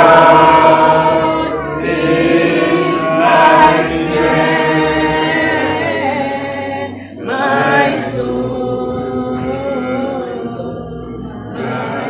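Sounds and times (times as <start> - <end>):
congregation singing: 0.0 - 12.0.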